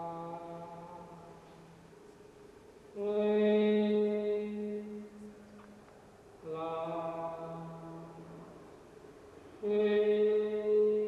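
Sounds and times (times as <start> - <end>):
person chanting long held notes: 0.0 - 1.7, 6.4 - 8.5, 9.6 - 11.0.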